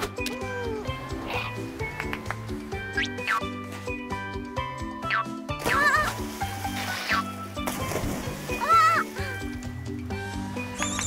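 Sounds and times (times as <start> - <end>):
bouncy cartoon music: 0.0 - 11.0
water splash: 5.6 - 9.4.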